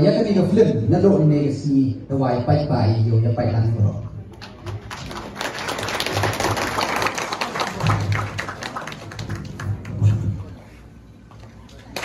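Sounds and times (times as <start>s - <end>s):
man speaking: 0.0s - 4.1s
audience clapping: 4.3s - 10.2s, 11.7s - 12.0s.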